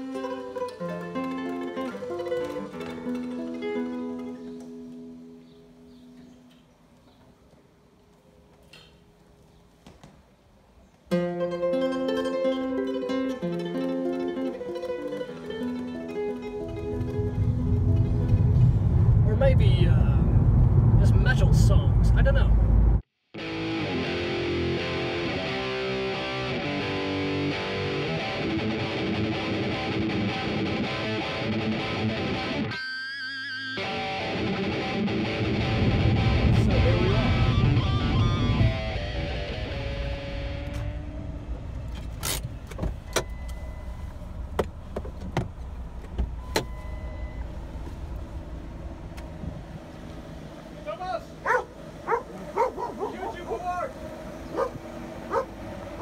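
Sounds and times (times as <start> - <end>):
plucked guitar music: 0.0 - 6.4, 11.1 - 18.9, 23.4 - 41.6
car engine rumble: 13.8 - 23.1, 35.4 - 56.0
dog barking: 51.4 - 53.6, 54.5 - 56.0.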